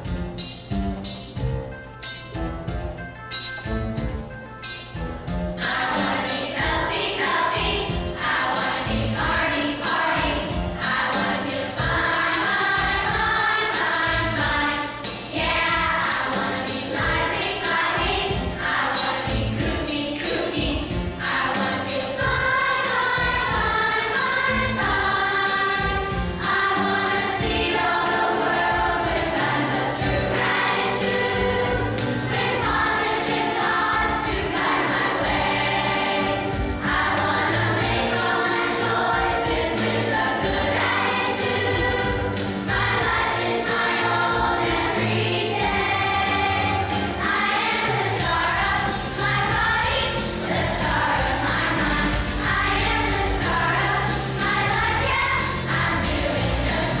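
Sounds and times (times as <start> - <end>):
instrumental accompaniment: 0.0 - 57.0
children's choir singing: 5.6 - 57.0
steady bass notes: 48.2 - 57.0.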